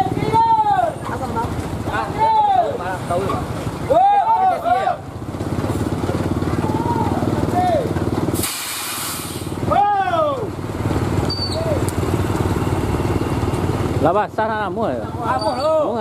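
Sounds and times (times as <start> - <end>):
truck diesel engine running: 0.0 - 16.0
air hissing: 8.3 - 9.6.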